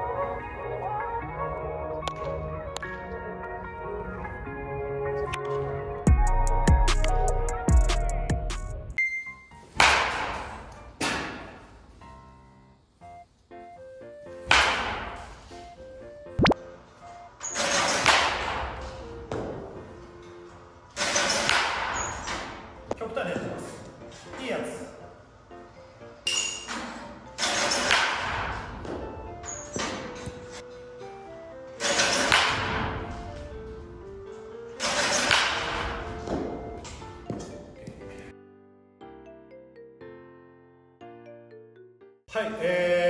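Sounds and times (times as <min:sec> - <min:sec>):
background music simple melody: 0:00.0 - 0:43.0
light plinking background music: 0:26.2 - 0:33.8.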